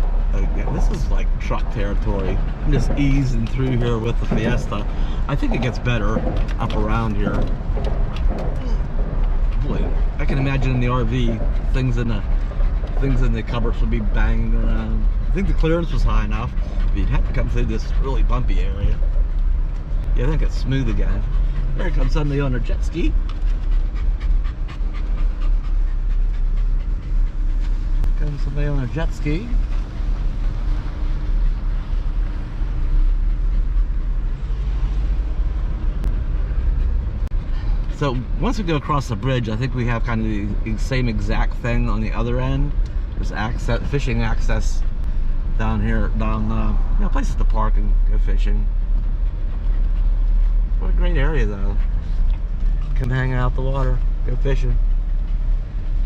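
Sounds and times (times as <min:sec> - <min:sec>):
knocks and rattles over bumps: 0:00.0 - 0:38.4
car rumbling on dirt track: 0:00.0 - 0:56.0.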